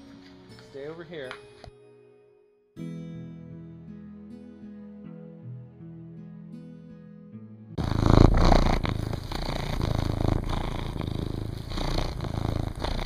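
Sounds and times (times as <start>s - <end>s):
background music: 0.0s - 13.0s
cat purring: 7.8s - 13.0s.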